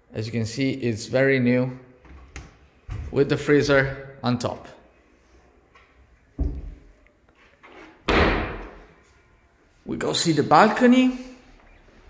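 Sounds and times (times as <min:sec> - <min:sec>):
fridge door slamming: 0:08.1 - 0:08.8.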